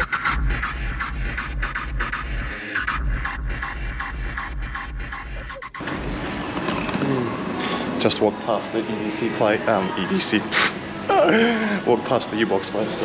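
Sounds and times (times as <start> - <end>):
electronic dance music: 0.0 - 5.8
heavy bass: 0.0 - 6.4.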